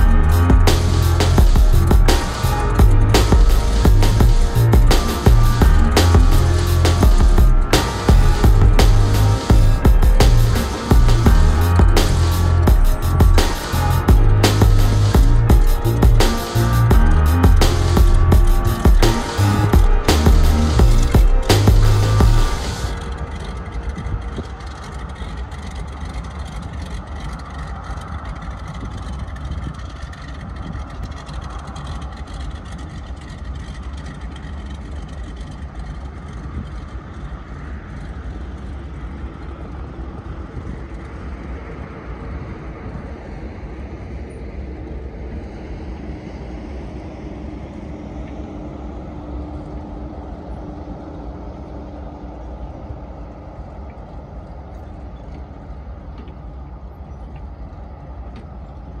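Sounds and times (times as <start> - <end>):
distant plane engine and propeller: 0.0 - 59.0.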